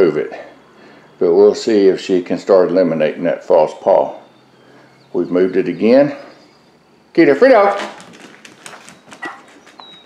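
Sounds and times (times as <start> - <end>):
dog claws clicking on wood floor: 7.7 - 10.0.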